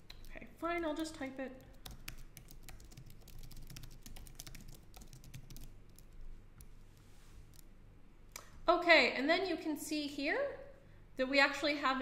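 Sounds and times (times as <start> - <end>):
computer keyboard typing: 1.6 - 6.7.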